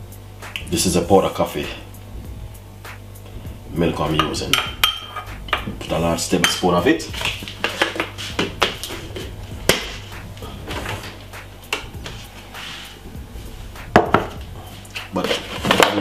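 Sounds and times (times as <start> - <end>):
kitchen utensils clinking: 4.2 - 5.3.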